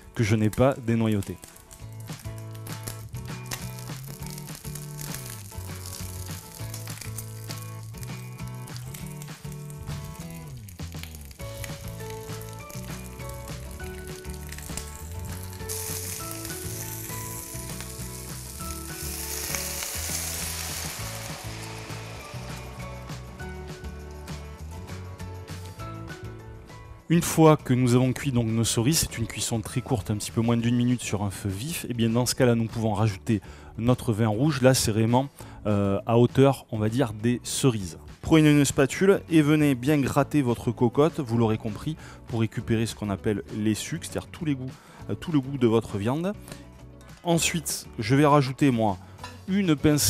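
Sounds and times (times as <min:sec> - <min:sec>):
background music: 0:00.0 - 0:50.0
chicken sizzling in hot oil: 0:01.2 - 0:24.4.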